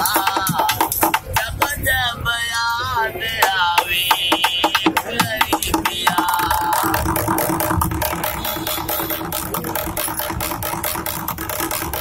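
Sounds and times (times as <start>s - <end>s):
stick drumming on plastic container: 0.0s - 1.6s, 3.8s - 12.0s
man singing long notes: 1.4s - 10.1s.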